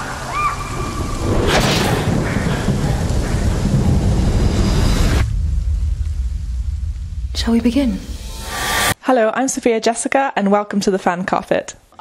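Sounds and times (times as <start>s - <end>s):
deep thunder rumble: 0.0s - 9.0s
heavy rain: 0.0s - 9.0s
thunder crack: 0.0s - 9.0s.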